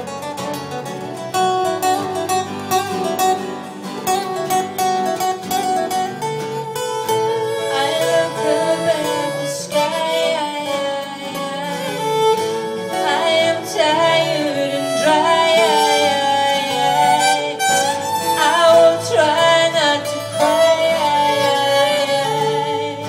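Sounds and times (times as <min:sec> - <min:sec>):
fiddle melody: 0:00.0 - 0:23.0
strummed acoustic guitars: 0:00.0 - 0:23.0.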